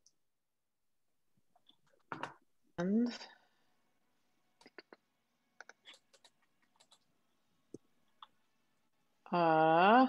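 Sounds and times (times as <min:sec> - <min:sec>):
computer clicking: 0:05.6 - 0:07.1.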